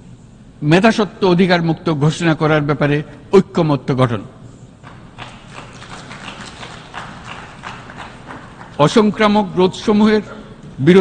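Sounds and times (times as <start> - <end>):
audience applause: 4.8 - 9.1.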